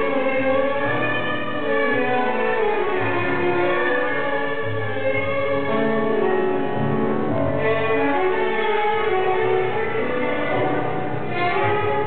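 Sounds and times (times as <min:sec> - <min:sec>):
tango orchestra music: 0:00.0 - 0:12.0.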